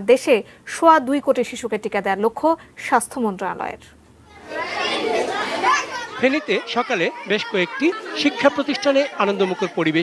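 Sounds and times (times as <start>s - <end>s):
children chattering: 4.2s - 10.0s.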